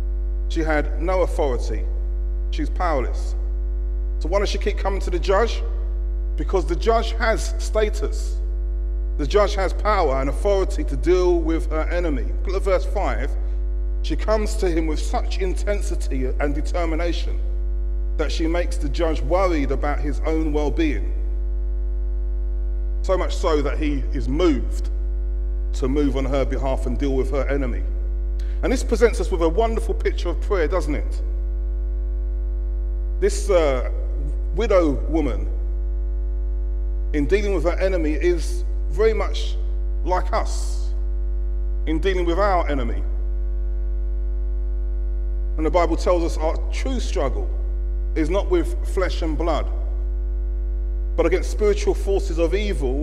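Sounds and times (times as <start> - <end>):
electrical mains hum: 0.0 - 53.0
faint electrical buzz: 0.0 - 53.0.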